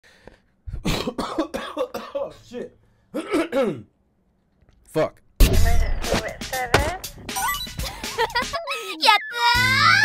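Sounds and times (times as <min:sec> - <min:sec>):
man coughing: 0:00.7 - 0:02.4, 0:03.1 - 0:03.9.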